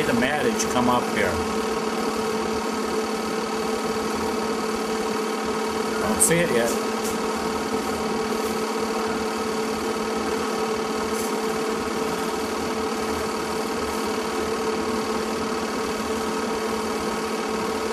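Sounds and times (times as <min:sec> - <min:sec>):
film projector humming: 0:00.0 - 0:17.9.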